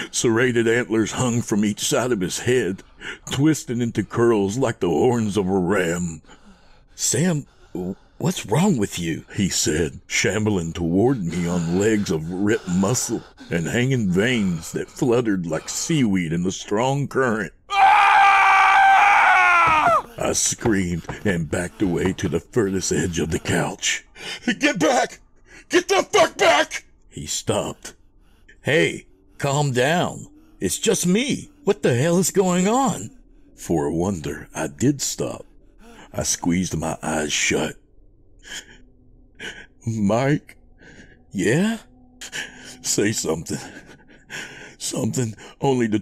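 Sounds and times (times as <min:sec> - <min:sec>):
man screaming: 0:17.7 - 0:20.4.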